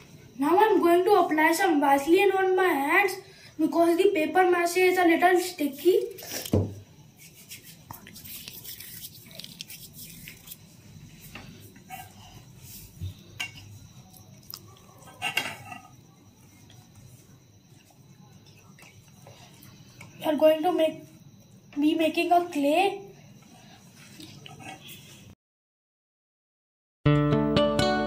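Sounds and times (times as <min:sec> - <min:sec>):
metal spoon scraping steel bowl: 0:24.4 - 0:25.0.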